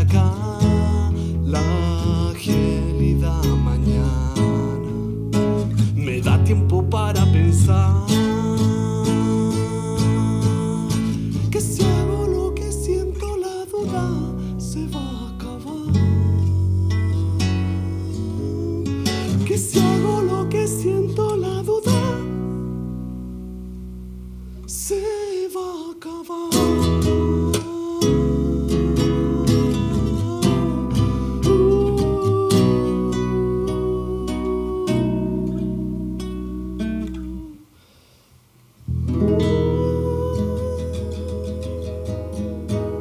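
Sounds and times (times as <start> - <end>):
classical guitar strummed and plucked: 0.0 - 37.6, 38.9 - 43.0.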